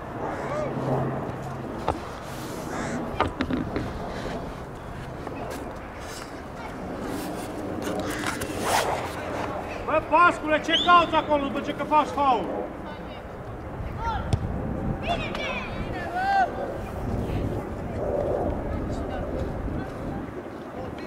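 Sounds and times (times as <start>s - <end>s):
steady low hum: 0.0s - 21.0s
distant shouts and voices: 0.2s - 1.2s, 4.1s - 21.0s.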